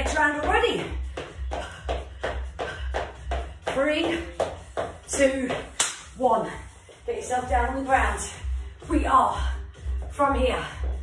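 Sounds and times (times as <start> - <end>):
low music beat: 0.0 - 11.0.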